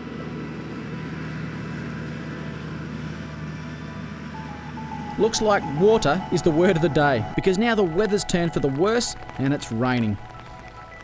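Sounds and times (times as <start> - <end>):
vehicle engine humming: 0.0 - 11.0
rain hissing: 4.4 - 11.0.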